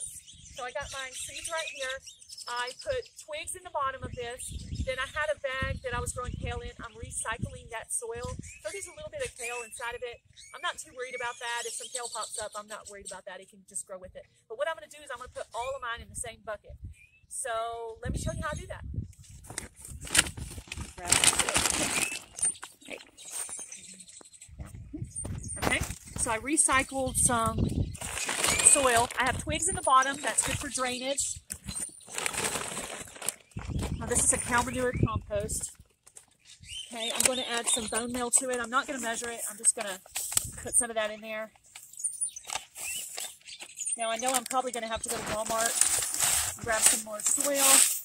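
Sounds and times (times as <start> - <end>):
bag rustling: 19.4 - 23.8, 27.9 - 31.0, 31.7 - 34.9, 44.2 - 48.0
hands digging in soil: 44.3 - 48.0.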